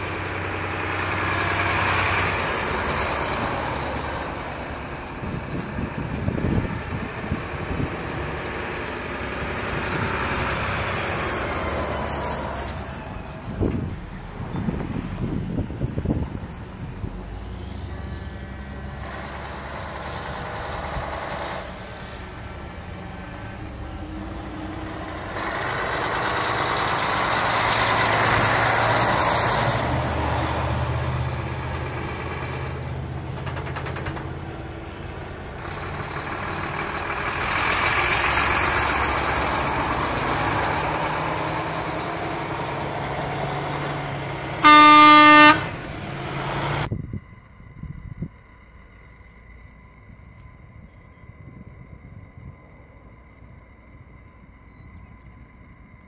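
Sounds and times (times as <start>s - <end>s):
trucks driving past: 0.0s - 56.0s
truck horn blast: 44.6s - 45.9s.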